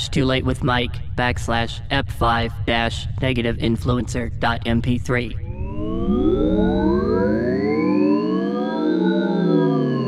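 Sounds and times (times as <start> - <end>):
synthesizer tones sliding in pitch: 5.4 - 10.0.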